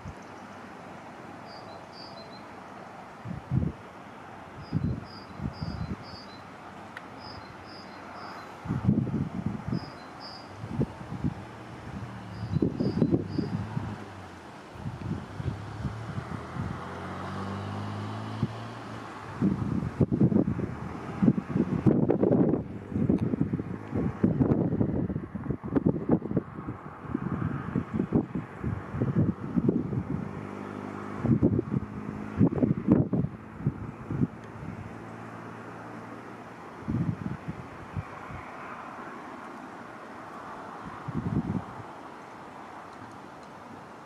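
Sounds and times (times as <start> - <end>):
wind gusting on microphone: 2.9 - 43.9.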